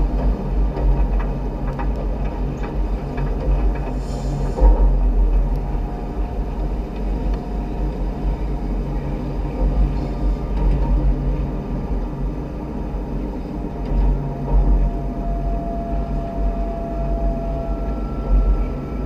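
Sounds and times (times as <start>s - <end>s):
train running gear rumble: 0.0s - 19.0s
faint hum: 3.6s - 19.0s.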